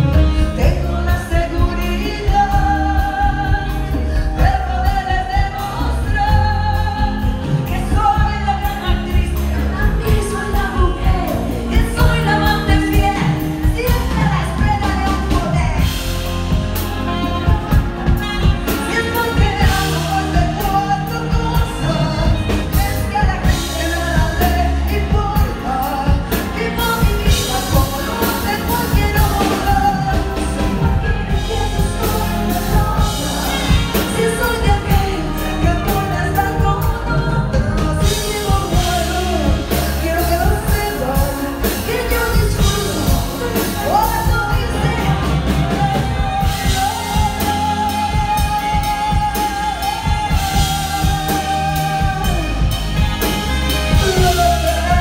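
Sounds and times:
bass: 0:00.0 - 0:55.0
drums: 0:00.0 - 0:55.0
woman singing into microphone: 0:00.0 - 0:55.0.

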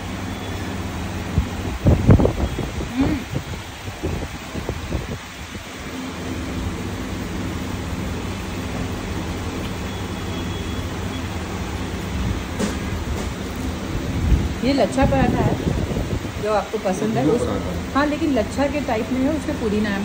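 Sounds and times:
low machine hum: 0:05.6 - 0:20.0.

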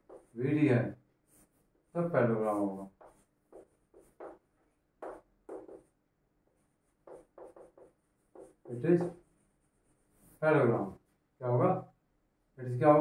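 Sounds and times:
chalk scratching on blackboard: 0:00.0 - 0:00.4, 0:01.2 - 0:11.1.

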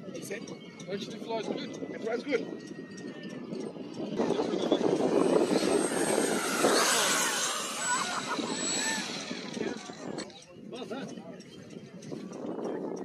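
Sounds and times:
model jet flying past: 0:04.2 - 0:10.3.

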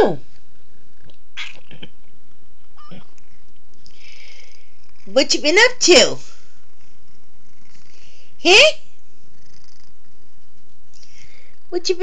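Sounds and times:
cat purring: 0:00.1 - 0:12.0
faint cat call: 0:02.8 - 0:03.3.

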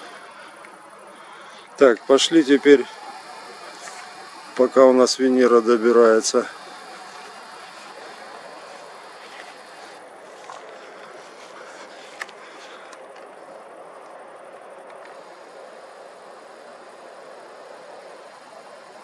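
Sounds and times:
outdoor background noise: 0:00.0 - 0:19.0.

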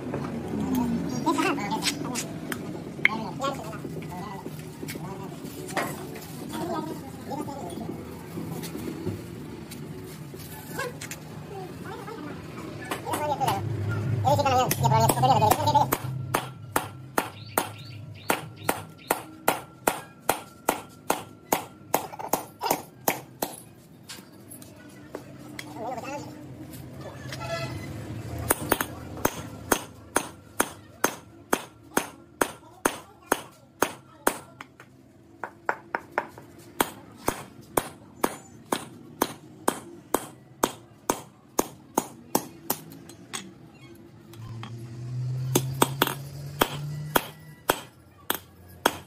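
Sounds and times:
hammer tapping metal: 0:14.7 - 0:23.6, 0:28.5 - 0:34.8, 0:35.4 - 0:43.6, 0:45.5 - 0:49.0.

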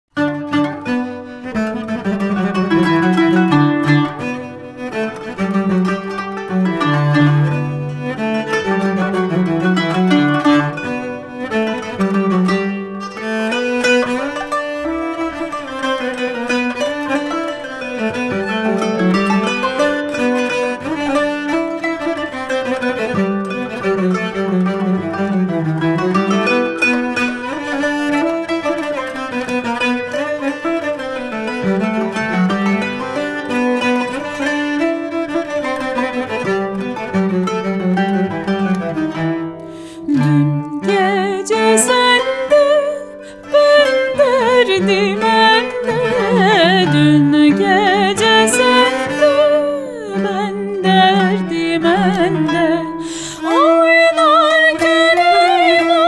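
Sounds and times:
bowed strings melody: 0:00.1 - 0:56.0
plucked strings: 0:00.1 - 0:56.0
low bowed line: 0:00.5 - 0:56.0.

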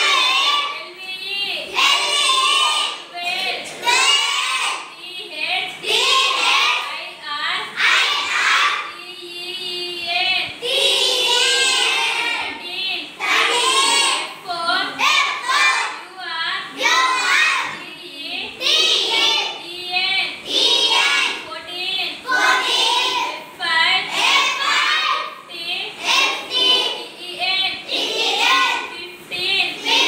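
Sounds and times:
children singing in unison: 0:00.0 - 0:00.8, 0:01.7 - 0:04.9, 0:05.8 - 0:06.8, 0:07.7 - 0:09.7, 0:10.4 - 0:16.0, 0:16.6 - 0:17.9, 0:18.6 - 0:19.6, 0:20.4 - 0:21.4, 0:22.2 - 0:23.4, 0:24.0 - 0:30.0.

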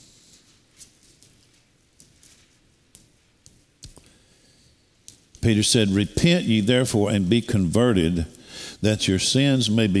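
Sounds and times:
faint clicks and taps of handling: 0:00.8 - 0:04.2.

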